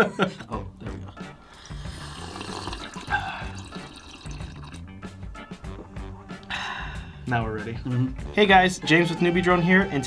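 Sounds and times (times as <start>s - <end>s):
background music: 0.0s - 10.0s
people sipping and swallowing: 0.9s - 6.6s
ice in glass mug: 1.7s - 4.8s.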